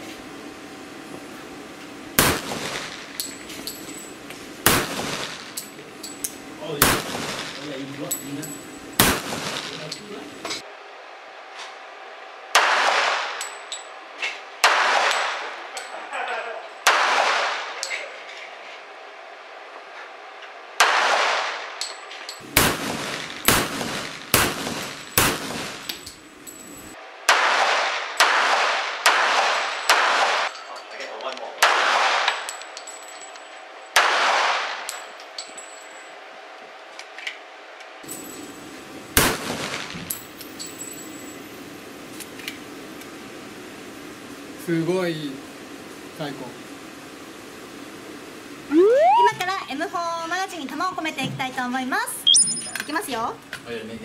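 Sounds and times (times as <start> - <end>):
pistol shots echoing: 2.2 - 3.0, 4.6 - 5.6, 6.8 - 7.7, 9.0 - 9.9, 14.6 - 15.5, 22.4 - 25.9, 27.3 - 30.5, 31.6 - 32.5, 34.0 - 34.9, 39.2 - 40.0.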